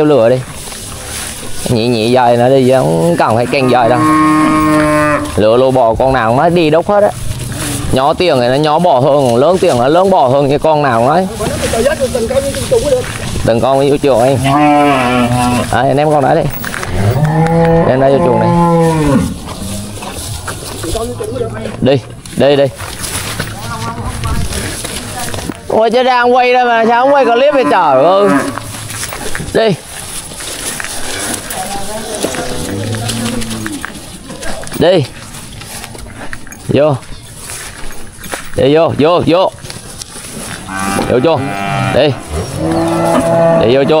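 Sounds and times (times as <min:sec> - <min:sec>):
calf mooing: 0:02.9 - 0:05.5, 0:14.2 - 0:15.8, 0:16.9 - 0:20.1, 0:26.6 - 0:28.8, 0:40.6 - 0:44.0.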